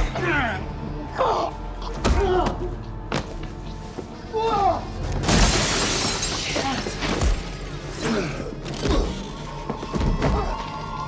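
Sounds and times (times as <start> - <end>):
glass panel crashing: 5.2 - 7.3.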